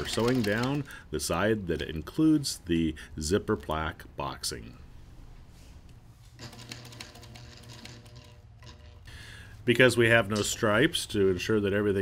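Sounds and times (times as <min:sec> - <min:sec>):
sewing machine motor hum: 0:00.0 - 0:00.9, 0:06.4 - 0:09.1.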